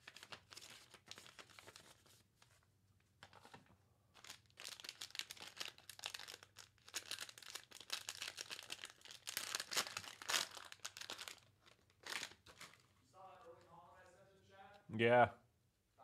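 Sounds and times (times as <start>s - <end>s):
wrapper crinkling and tearing: 0.0s - 2.6s, 3.2s - 13.0s.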